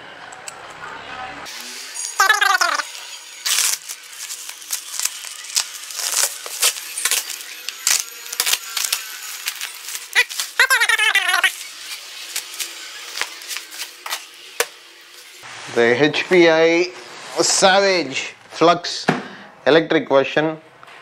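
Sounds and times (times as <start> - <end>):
plastic wrapping crinkling: 3.4 - 14.3
knife slitting plastic wrapping: 3.4 - 14.7.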